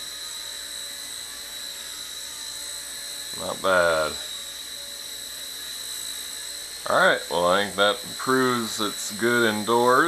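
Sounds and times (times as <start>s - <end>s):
electric motor whine: 0.0s - 10.0s
rotor hiss: 0.0s - 10.0s.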